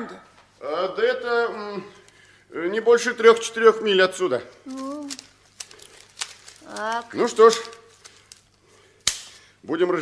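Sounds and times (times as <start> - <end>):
person speaking: 2.8 - 5.4, 6.6 - 8.0.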